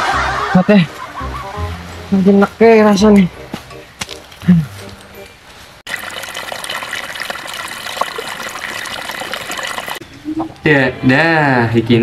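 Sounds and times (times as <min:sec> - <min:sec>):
stream running over rocks: 0:05.9 - 0:10.0.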